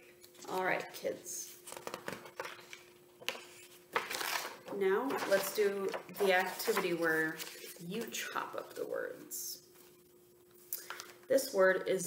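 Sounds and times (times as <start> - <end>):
paper rustling: 1.4 - 8.6.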